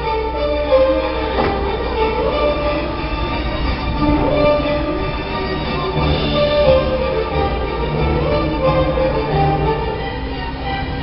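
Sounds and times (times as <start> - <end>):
jet ski engines droning: 0.0 - 11.0.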